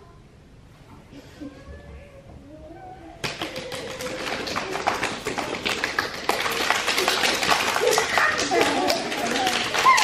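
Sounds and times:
people clapping and tapping: 3.2 - 10.0.

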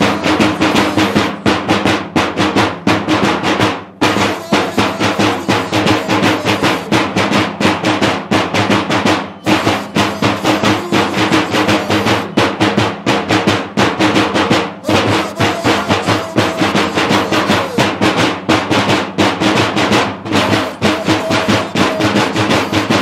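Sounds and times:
drums beaten fast: 0.0 - 23.0.

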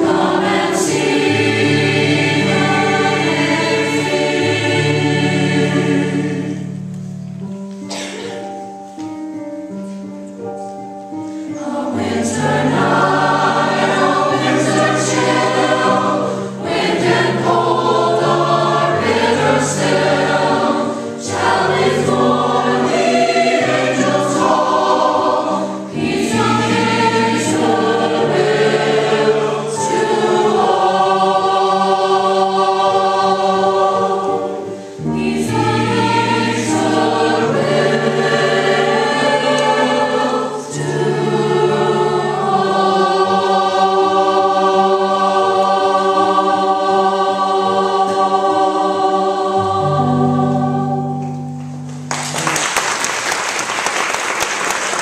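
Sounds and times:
mixed choir singing: 0.0 - 6.9, 11.5 - 51.5.

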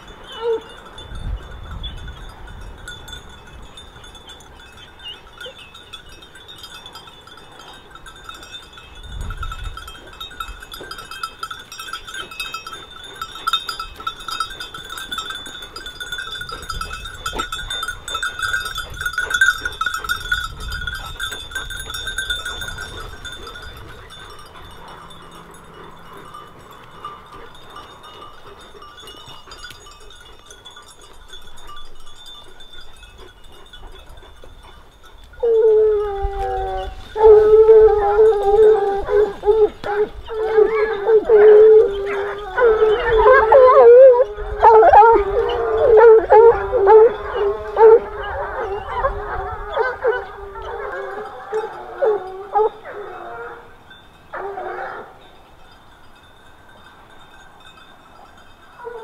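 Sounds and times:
hounds baying: 0.0 - 55.6, 57.6 - 59.0.

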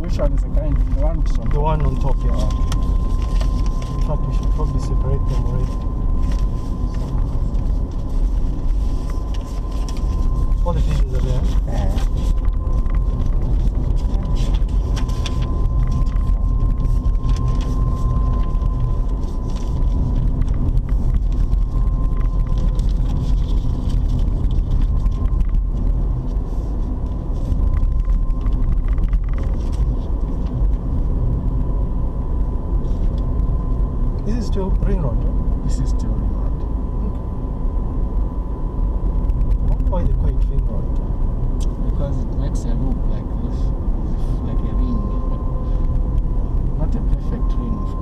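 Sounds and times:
engine and tyre rumble: 0.0 - 48.0
thin steady whine: 0.0 - 48.0.

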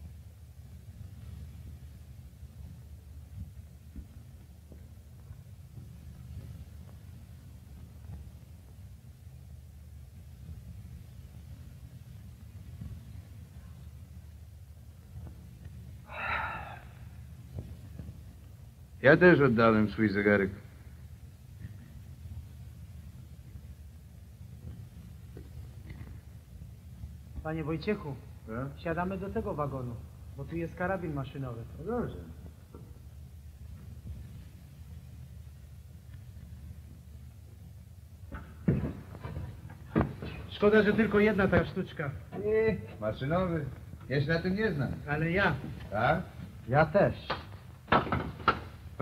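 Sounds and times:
low film soundtrack hum: 0.0 - 49.0
breathy rush of noise: 15.9 - 17.9
faint bumps: 17.1 - 49.0
loud knocks: 47.3 - 48.8.

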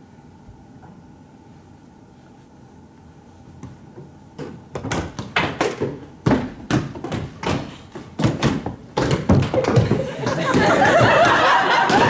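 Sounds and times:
people tapping on tables: 4.4 - 12.0.

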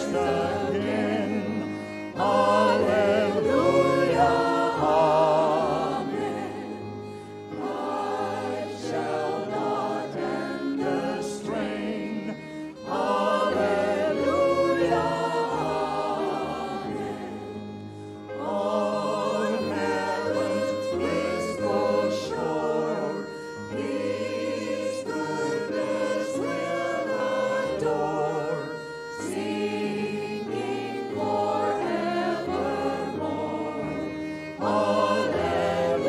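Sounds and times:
choir singing a hymn: 0.0 - 36.0
violin accompaniment: 0.0 - 36.0.

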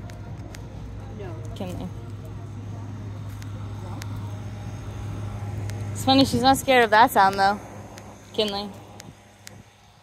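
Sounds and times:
air conditioning units humming: 0.0 - 10.0.

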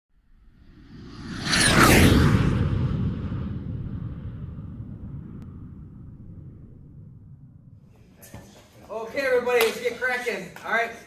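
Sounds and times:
deep rumbling boom: 0.6 - 8.1.

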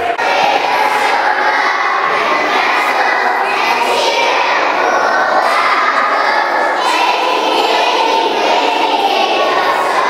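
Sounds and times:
children shouting together: 0.0 - 10.0
crowd noise: 0.0 - 10.0.

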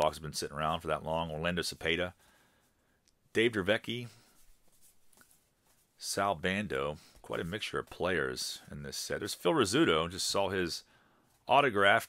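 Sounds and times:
cardboard cards rustling and scraping: 4.1 - 6.0.

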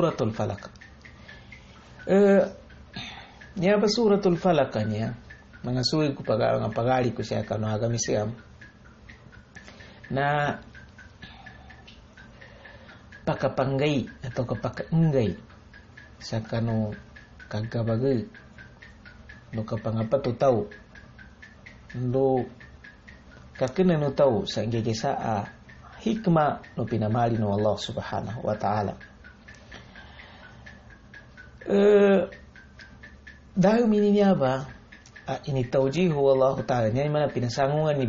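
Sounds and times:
faint regular ticking: 0.0 - 38.0
low steady hum: 0.0 - 38.0.

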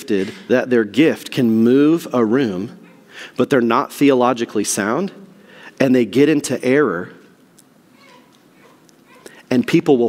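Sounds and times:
man speaking: 0.0 - 2.8, 3.4 - 7.3, 9.4 - 10.0.

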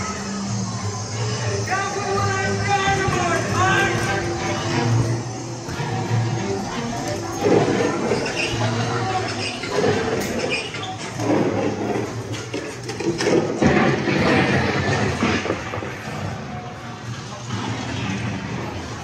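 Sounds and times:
show music and voices: 0.0 - 13.7.

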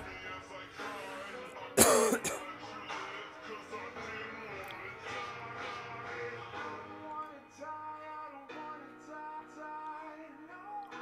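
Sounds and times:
loud cough: 1.8 - 2.5.

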